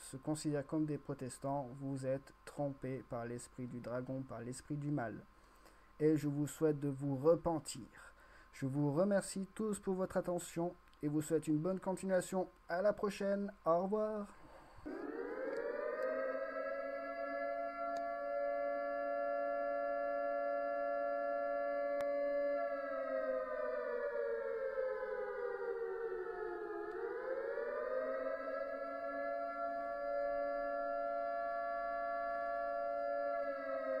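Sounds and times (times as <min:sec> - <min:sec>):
siren wailing: 0:14.6 - 0:34.0.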